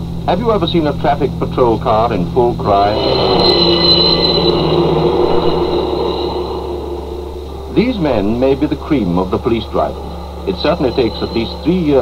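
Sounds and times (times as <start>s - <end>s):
high-pitched siren ring: 2.6s - 12.0s.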